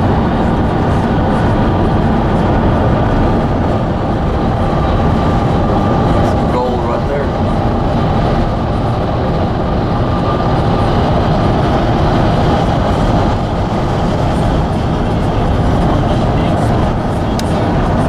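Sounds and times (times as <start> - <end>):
car engine: 0.0 - 18.0
tyres rumbling on highway: 0.0 - 18.0
wind noise: 0.0 - 18.0.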